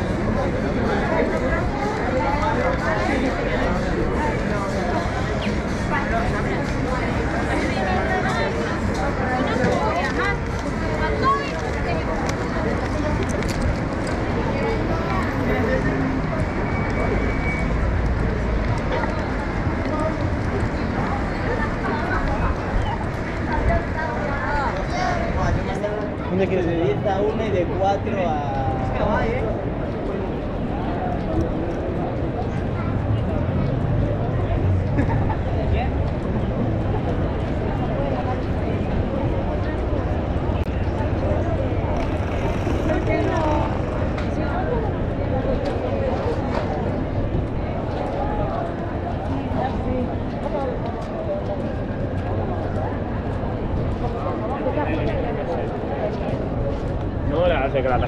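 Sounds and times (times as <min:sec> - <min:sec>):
passers-by talking: 0:00.0 - 0:58.0
road traffic rumble: 0:00.0 - 0:58.0.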